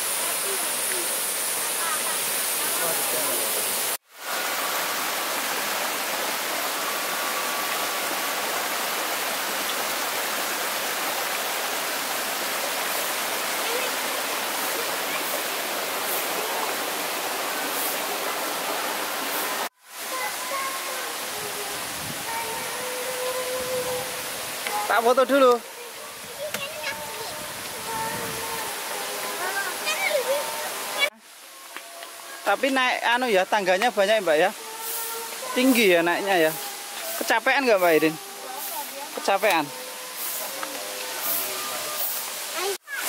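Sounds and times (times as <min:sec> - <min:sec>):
rushing stream water: 0:00.0 - 0:43.0.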